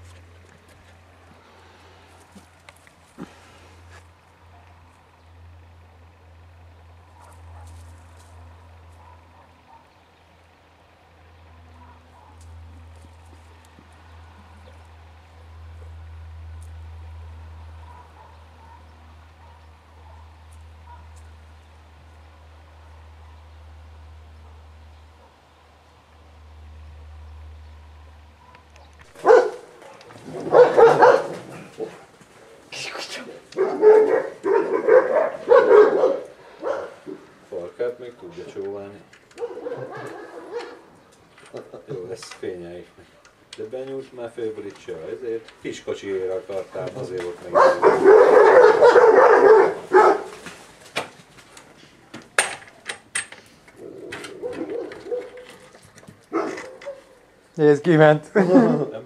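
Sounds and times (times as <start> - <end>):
puppy barking and yelping: 17.8 - 20.3, 28.4 - 32.0, 33.5 - 37.3, 39.4 - 41.0, 47.5 - 50.4, 53.8 - 57.3.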